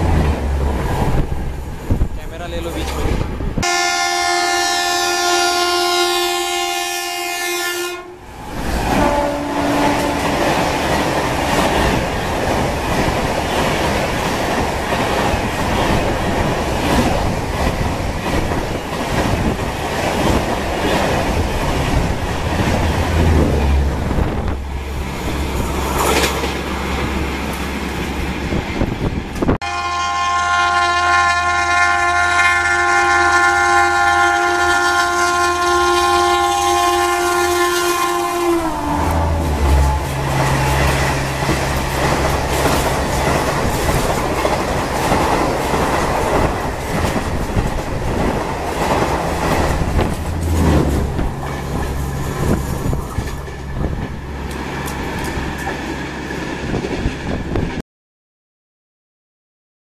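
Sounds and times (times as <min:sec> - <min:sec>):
wheel and rail noise: 0:00.0 - 0:03.7, 0:08.0 - 0:29.6, 0:33.3 - 0:57.8
train horn: 0:03.6 - 0:08.2, 0:08.9 - 0:10.6, 0:29.6 - 0:41.4.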